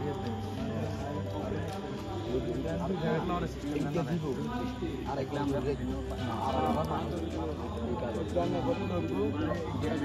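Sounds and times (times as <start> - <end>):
music playing: 0.0 - 10.0
people talking over one another: 0.0 - 10.0.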